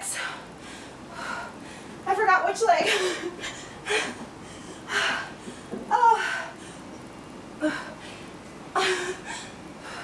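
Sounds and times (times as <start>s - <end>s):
woman breathing hard: 0.0s - 2.0s, 2.9s - 6.9s, 7.6s - 10.0s.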